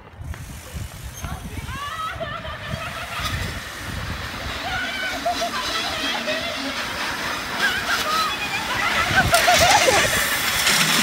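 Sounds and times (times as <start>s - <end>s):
steady low rumble: 0.0s - 10.7s
distant voices calling out: 1.2s - 10.6s.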